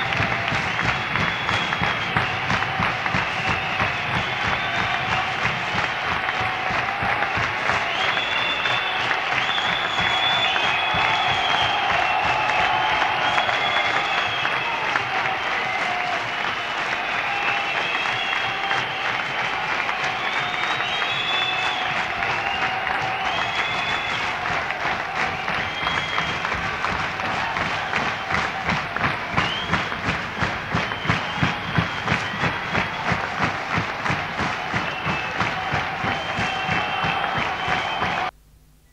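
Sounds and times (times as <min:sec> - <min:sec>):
clapping in unison: 0:00.0 - 0:38.3
shrill whistles: 0:00.0 - 0:38.3
audience applauding and cheering: 0:00.0 - 0:38.4.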